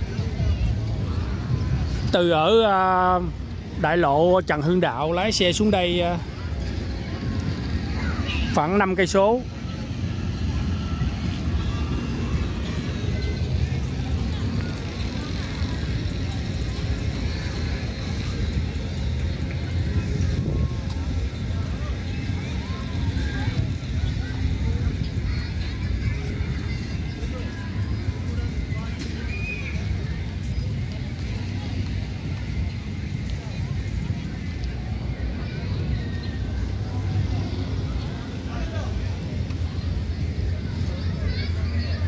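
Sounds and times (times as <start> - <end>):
faint distant voices: 0.0 - 42.0
wind rumble on microphone: 0.0 - 42.0.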